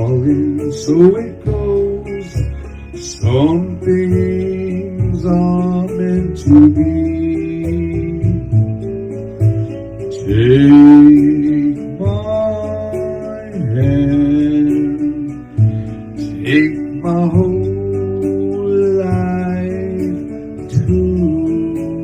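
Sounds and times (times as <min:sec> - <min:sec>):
man singing karaoke: 0:00.0 - 0:22.0
recorded backing music: 0:00.0 - 0:22.0.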